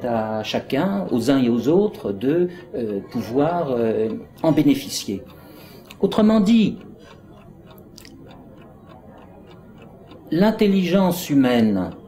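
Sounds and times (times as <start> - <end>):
chess clock ticking: 0.1 - 12.0.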